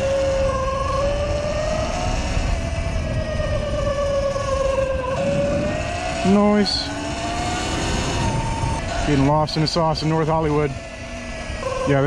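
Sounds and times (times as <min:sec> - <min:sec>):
electric motor whining: 0:00.0 - 0:11.7
wind noise: 0:00.0 - 0:12.0.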